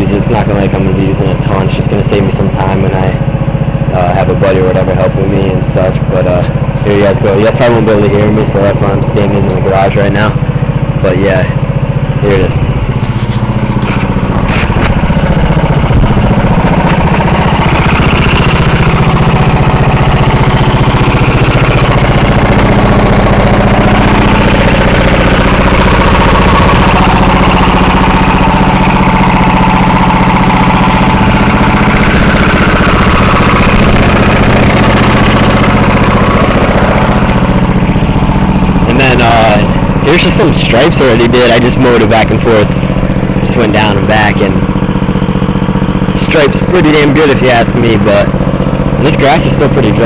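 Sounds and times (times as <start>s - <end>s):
lawn mower engine running: 0.0s - 50.0s.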